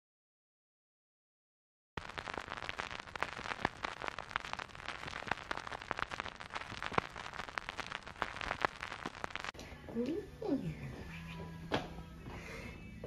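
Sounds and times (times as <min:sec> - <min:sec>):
vinyl record crackling: 0:02.0 - 0:11.7.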